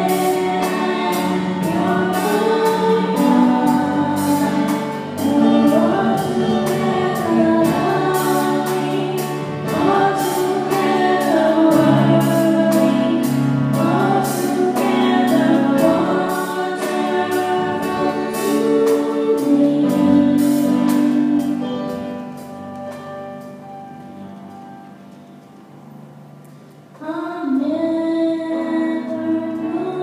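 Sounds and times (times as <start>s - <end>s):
girls singing a duet: 0.0s - 21.8s, 27.0s - 30.0s
musical accompaniment with beat: 0.0s - 26.9s.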